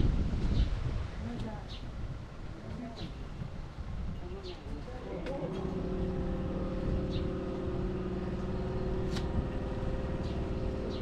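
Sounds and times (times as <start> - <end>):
vehicle engine idling: 5.0 - 11.0.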